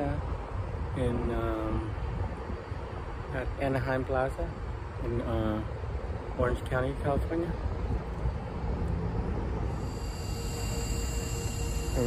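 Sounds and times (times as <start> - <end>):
charger hum with high whine: 0.0 - 12.0
steady low rumble: 0.0 - 12.0.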